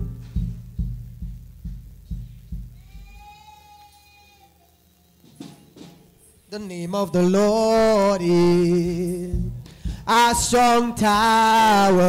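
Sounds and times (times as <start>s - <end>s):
church keyboard low notes: 0.0s - 5.8s, 6.5s - 12.0s.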